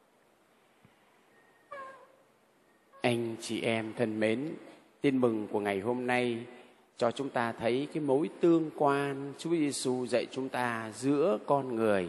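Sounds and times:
short high-pitched call: 1.4s - 2.2s.

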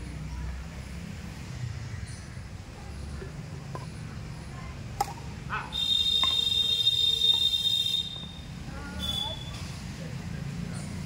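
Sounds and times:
racket striking shuttlecock: 5.0s - 5.3s, 6.1s - 6.5s.

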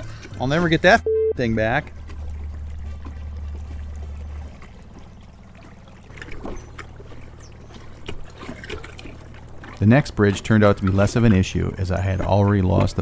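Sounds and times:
low steady hum: 0.0s - 13.0s
water lapping against kayak hull: 0.0s - 13.0s
small splashes: 1.6s - 13.0s.

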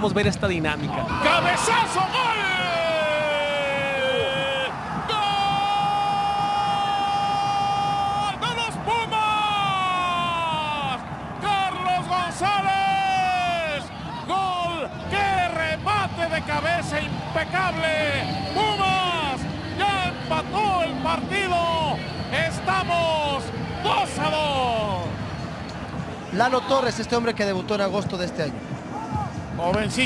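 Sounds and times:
commentator shouting goal cry: 0.9s - 24.9s.

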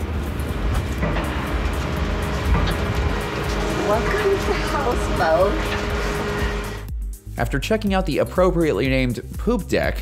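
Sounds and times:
steady low rumble: 0.0s - 7.4s
background music: 0.0s - 10.0s.

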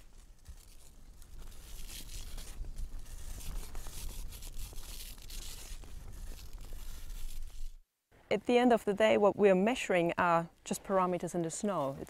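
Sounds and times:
clean suit rustling: 0.0s - 7.8s
snow being scraped: 0.0s - 7.8s.

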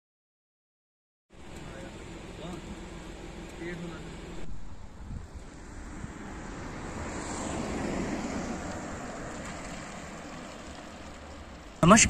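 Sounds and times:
vehicle passing: 1.4s - 12.0s
wind buffeting microphone: 4.4s - 10.3s.

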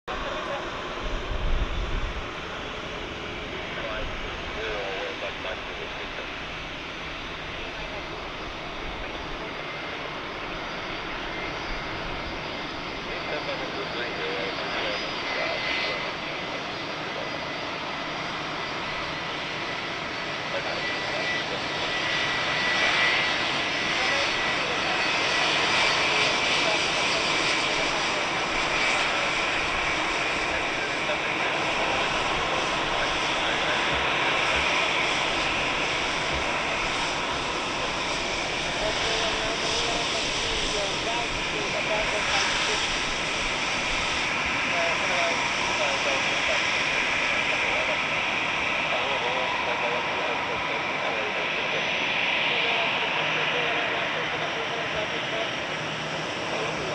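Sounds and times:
jet engines rushing: 0.1s - 56.9s.

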